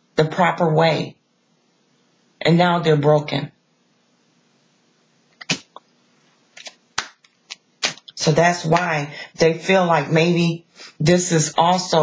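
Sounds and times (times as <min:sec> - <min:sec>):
cards snapping and tapping: 0:06.6 - 0:08.1.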